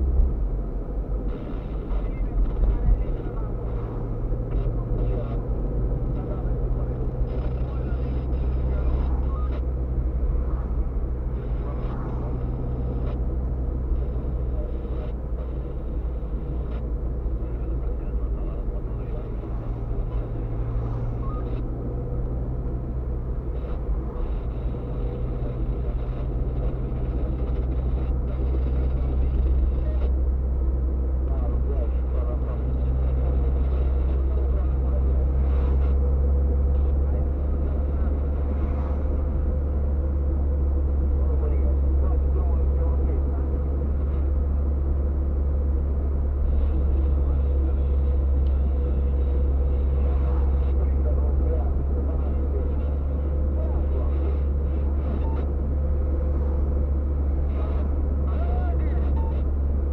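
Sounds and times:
car engine rumble: 0.0s - 59.9s.

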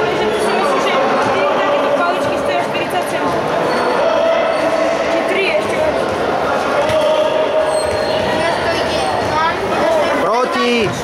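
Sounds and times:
voices calling and chattering: 0.0s - 11.0s.

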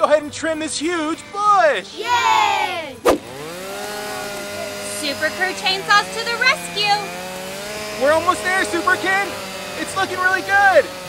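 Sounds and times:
toy chainsaw motor drone: 3.2s - 11.0s.

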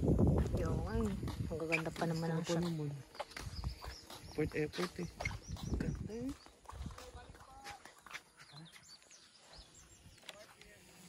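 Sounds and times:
high bird chirps: 1.6s - 7.1s.

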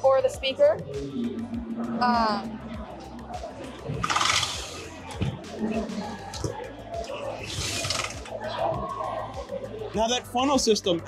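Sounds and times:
people talking: 0.0s - 1.0s, 1.8s - 8.8s, 9.4s - 11.0s
background music: 0.0s - 11.0s.

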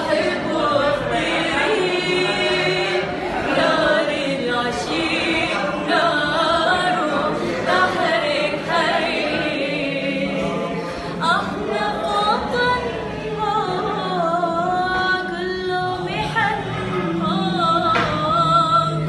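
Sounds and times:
women singing unaccompanied: 0.0s - 19.0s.

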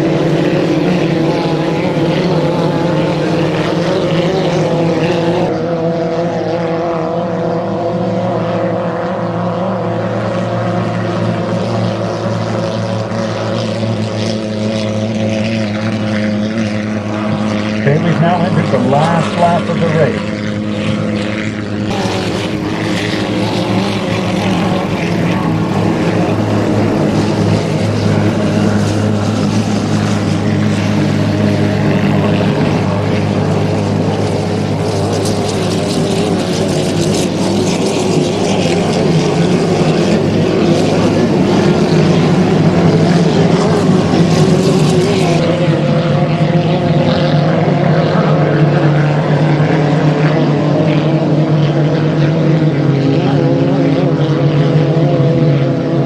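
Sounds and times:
racing boat engines droning: 0.0s - 56.0s.

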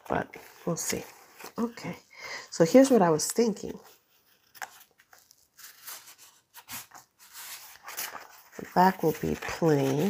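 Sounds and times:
wallpaper rustling and scraping: 2.6s - 10.0s.

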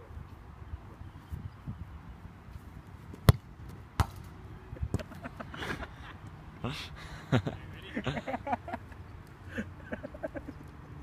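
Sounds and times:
foot kicking soccer ball: 3.1s - 4.3s.

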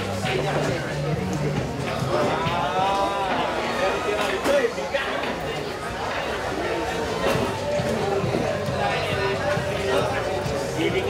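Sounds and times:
room chatter: 0.0s - 11.0s.

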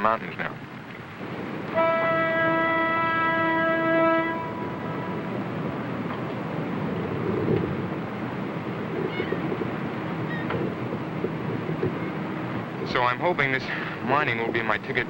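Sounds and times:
low rumble and hiss: 0.0s - 15.0s
boat horn: 1.6s - 5.7s.

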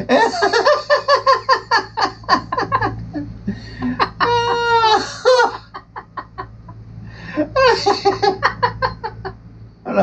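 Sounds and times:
man laughing hard: 0.0s - 9.4s.

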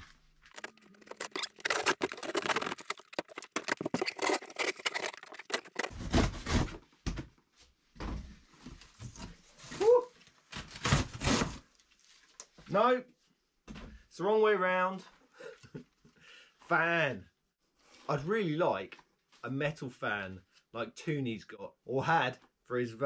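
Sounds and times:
packing paper rustling: 0.0s - 6.6s
packing tape ripping: 0.5s - 6.6s.

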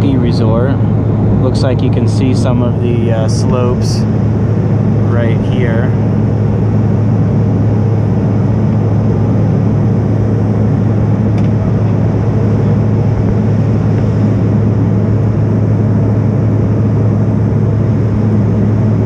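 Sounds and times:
airliner cabin engine noise: 0.0s - 19.0s.

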